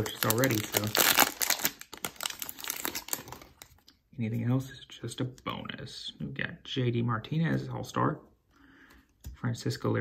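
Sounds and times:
wrapper and paper crinkling: 0.0s - 3.8s.

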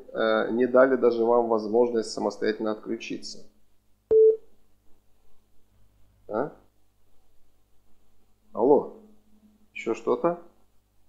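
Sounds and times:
short telephone beep: 4.1s - 4.4s.

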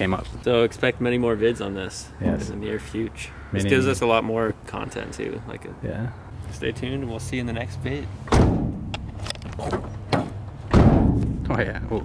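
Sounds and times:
heavy thud: 8.3s - 9.0s, 10.1s - 11.7s.

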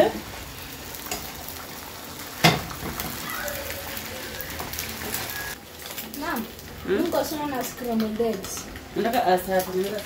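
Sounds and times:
eggs sizzling in a frying pan: 0.0s - 10.0s.

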